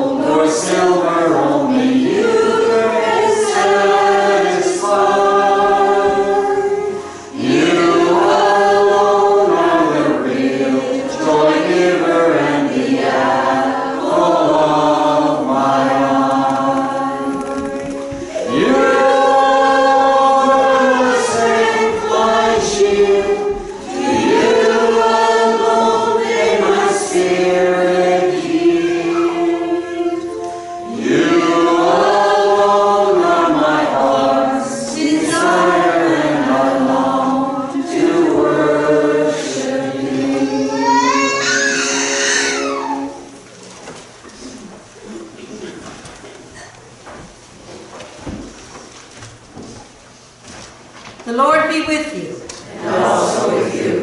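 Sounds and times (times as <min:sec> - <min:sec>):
church choir singing: 0:00.0 - 0:43.5, 0:52.6 - 0:54.0.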